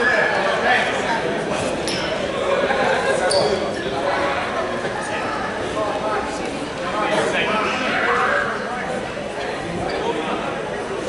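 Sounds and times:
people talking: 0.0s - 11.0s
shoe squeak: 3.2s - 3.7s.

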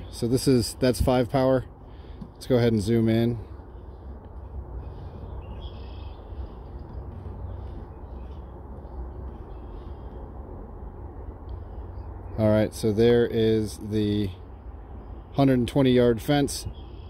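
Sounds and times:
faint distant bird calls: 0.0s - 17.0s
wind rumble on microphone: 0.0s - 17.0s.

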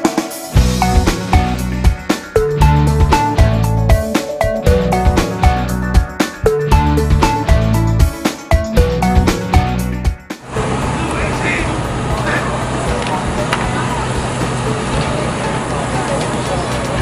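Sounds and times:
plucked background music: 0.0s - 17.0s
crowd hubbub: 10.5s - 17.0s
faint distant voices: 10.8s - 17.0s.

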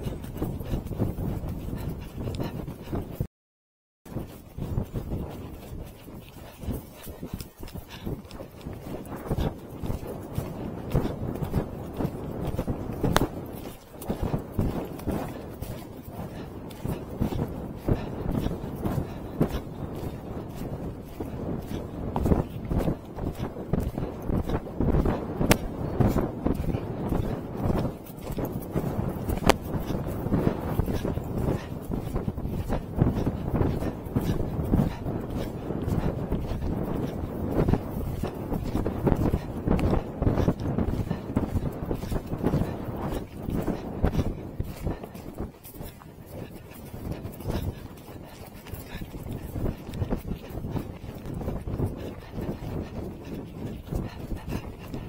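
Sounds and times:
hoofbeats thudding on turf: 0.0s - 3.2s, 4.1s - 55.0s
wind buffeting microphone: 0.0s - 3.3s, 4.1s - 55.0s.

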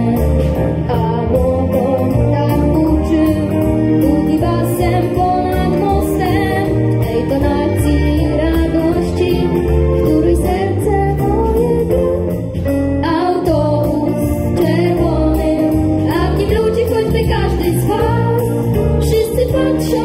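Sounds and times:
small ensemble playing upbeat song: 0.0s - 20.0s.

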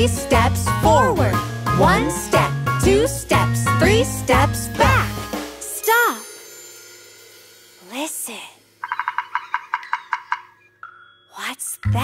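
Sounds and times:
woodpecker drumming: 8.8s - 11.5s.

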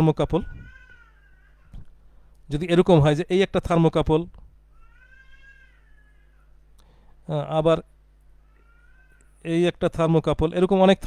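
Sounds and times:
man speaking: 2.5s - 4.3s, 7.3s - 7.8s, 9.5s - 11.0s.

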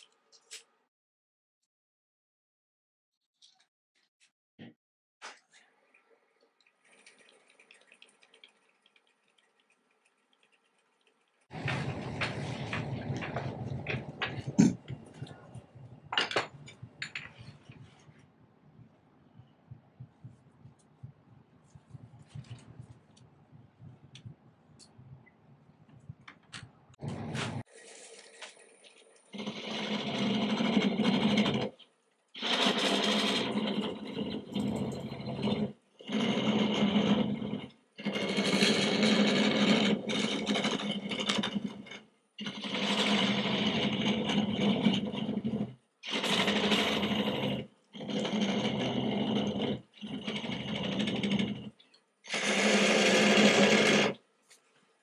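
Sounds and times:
turning tool cutting wood: 11.4s - 16.8s, 27.0s - 31.8s, 32.4s - 54.2s
wood lathe spinning: 11.4s - 18.0s, 27.0s - 31.8s, 32.4s - 54.2s.

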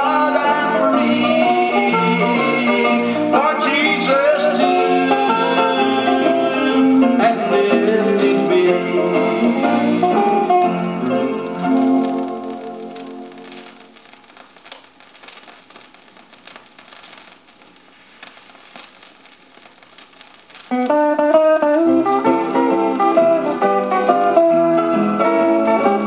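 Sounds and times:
gospel music from vinyl record: 0.0s - 26.0s
record surface hiss and crackles: 0.0s - 26.0s.

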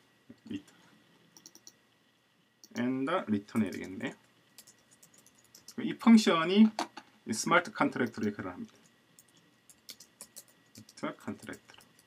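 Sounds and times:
faint computer clicks: 1.4s - 1.8s, 2.6s - 2.9s, 4.6s - 5.8s, 8.0s - 12.0s.

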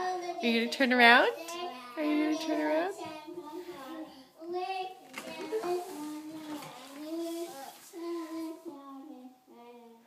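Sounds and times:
young child singing: 0.0s - 0.5s, 1.4s - 10.0s.

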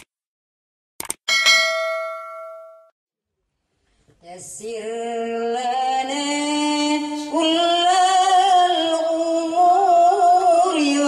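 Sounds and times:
bell ding: 1.3s - 2.9s.

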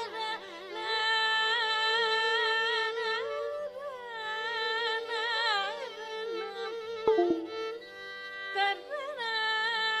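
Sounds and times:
woman singing ornamented melody: 7.1s - 7.7s.

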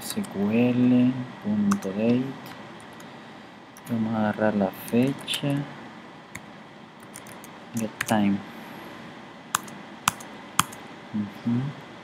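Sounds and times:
faint steady hiss: 0.0s - 12.0s
computer keyboard keystrokes: 7.0s - 8.2s, 9.6s - 10.8s.

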